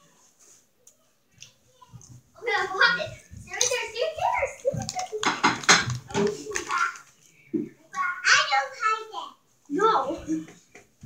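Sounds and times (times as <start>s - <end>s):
indistinct talking: 1.3s - 10.6s
plastic chip bag crinkling: 3.5s - 7.2s.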